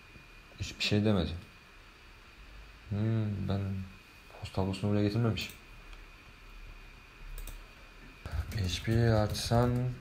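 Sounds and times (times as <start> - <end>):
computer mouse clicks: 7.3 - 7.6.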